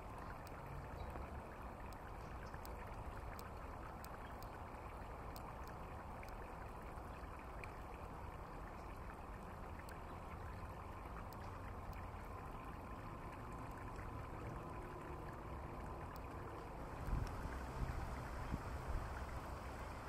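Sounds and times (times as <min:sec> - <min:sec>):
faint steady hum: 0:00.0 - 0:20.0
outdoor background noise: 0:00.0 - 0:20.0.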